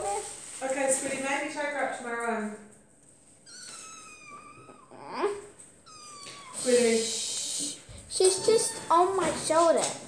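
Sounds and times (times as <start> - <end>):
kitten meowing: 3.4 - 9.2.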